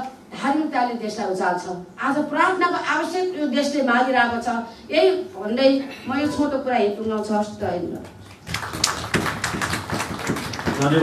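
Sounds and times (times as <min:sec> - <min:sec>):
hand clapping: 0:08.3 - 0:11.0.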